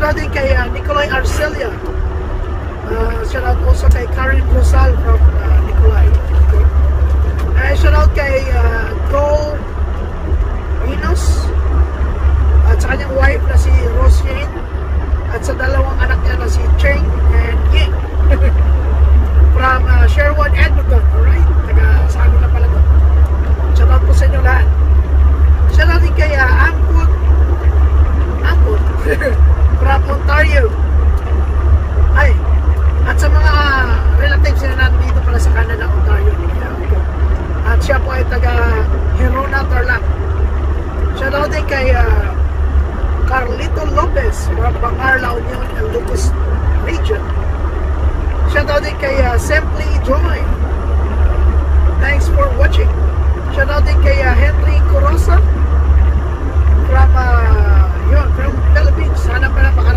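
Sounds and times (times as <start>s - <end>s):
truck diesel engine rumbling: 0.0s - 59.9s.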